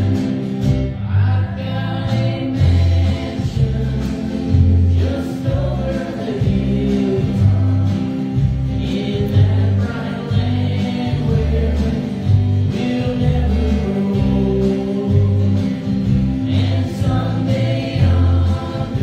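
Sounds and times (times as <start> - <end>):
acoustic guitar: 0.0 - 19.0
drums playing a steady beat: 0.0 - 19.0
voices singing together: 0.0 - 19.0.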